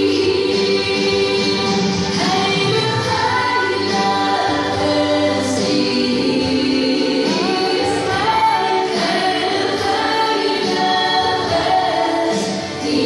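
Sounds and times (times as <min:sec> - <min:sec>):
choir singing held notes: 0:00.0 - 0:13.0.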